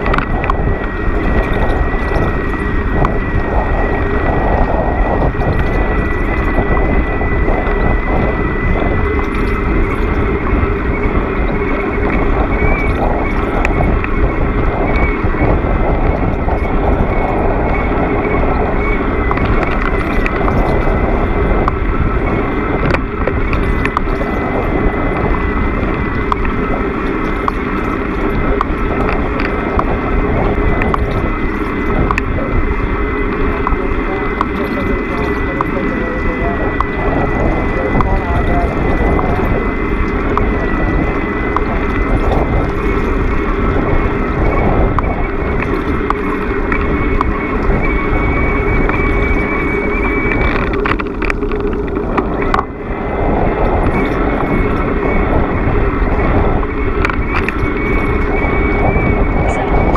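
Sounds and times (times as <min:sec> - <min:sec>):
high-pitched tone: 0:00.0 - 0:59.9
road noise: 0:00.0 - 0:59.9
wind noise: 0:00.0 - 0:59.9.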